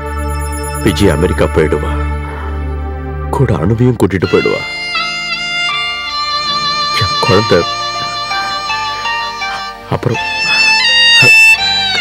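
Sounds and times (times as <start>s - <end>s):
slow sustained string notes: 0.0s - 12.0s.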